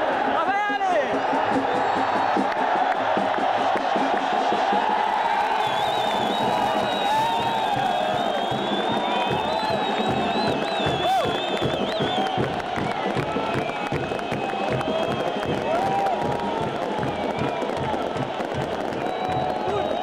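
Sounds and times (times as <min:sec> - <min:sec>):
stadium crowd cheering and singing: 0:00.0 - 0:20.0
high wavering whistle: 0:05.6 - 0:12.4.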